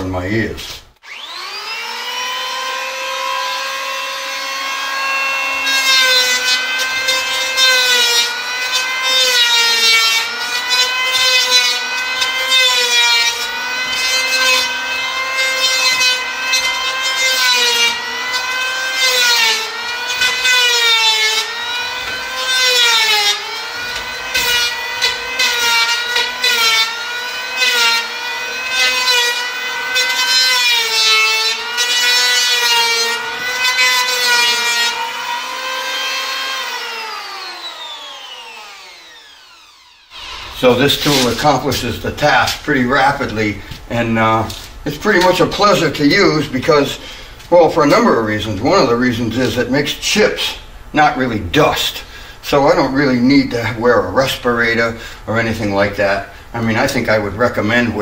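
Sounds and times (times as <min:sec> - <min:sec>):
power planer whining: 0:01.0 - 0:49.6.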